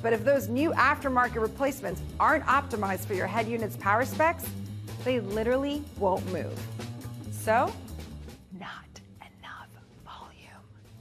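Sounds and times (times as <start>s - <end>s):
quiet background music: 0.0s - 11.0s
woman whispering: 8.5s - 10.8s.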